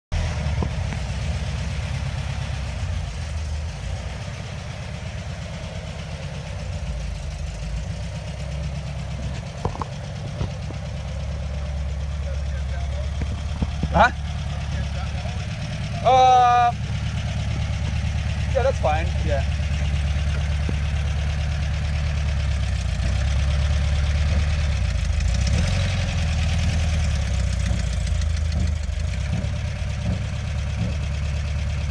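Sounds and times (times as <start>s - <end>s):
car engine running at low revs: 0.1s - 31.9s.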